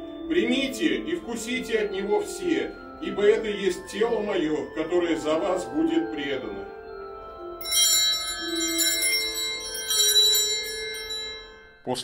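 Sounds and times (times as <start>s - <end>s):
altar bell ringing: 0.0s - 12.0s.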